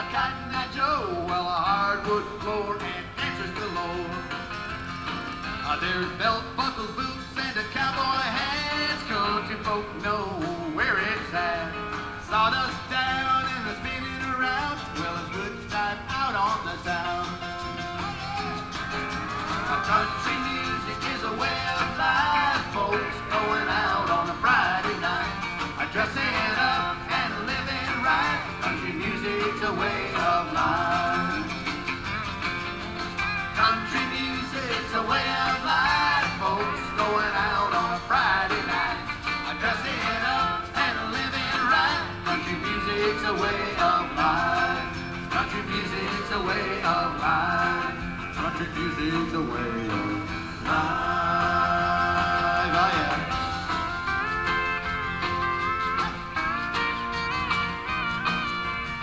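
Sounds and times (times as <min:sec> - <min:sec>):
country band playing live: 0:00.0 - 0:59.0.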